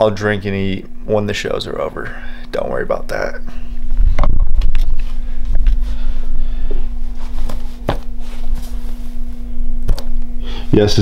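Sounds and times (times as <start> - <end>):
low electrical hum: 0.0 - 11.0
microphone handling rumble: 3.7 - 10.4
sharp handling knocks: 7.4 - 8.2.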